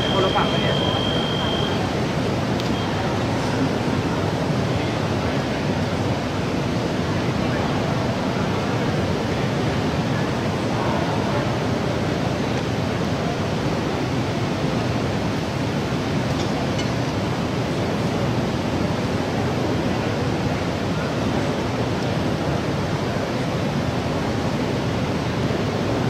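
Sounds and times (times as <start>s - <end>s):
indoor sports hall hiss: 0.0s - 26.0s.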